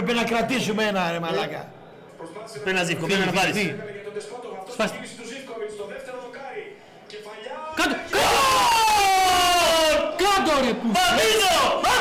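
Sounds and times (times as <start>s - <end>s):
men shouting in celebration: 8.0s - 12.0s.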